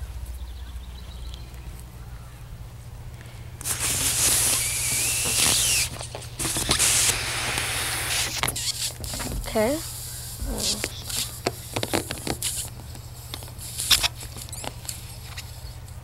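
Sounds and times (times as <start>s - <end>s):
faint low hum: 0.0s - 3.7s
breath blown into balloon: 3.6s - 6.0s.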